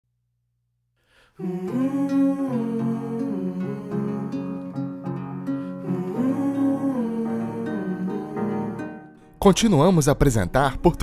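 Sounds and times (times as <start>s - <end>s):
background music with held notes: 1.5s - 11.0s.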